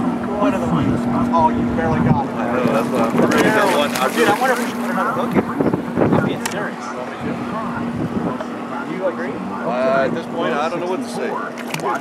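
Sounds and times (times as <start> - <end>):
boat motor humming: 0.0 - 12.0
men's voices: 0.2 - 12.0.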